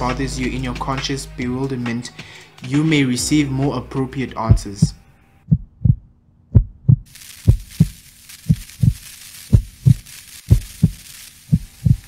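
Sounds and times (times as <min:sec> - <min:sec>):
heartbeat thumps: 0:04.5 - 0:12.0
faint hiss: 0:07.1 - 0:12.0.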